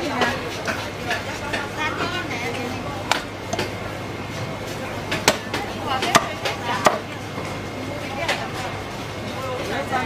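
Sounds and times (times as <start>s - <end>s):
cleaver chopping fish: 5.2s - 5.5s, 6.1s - 7.0s.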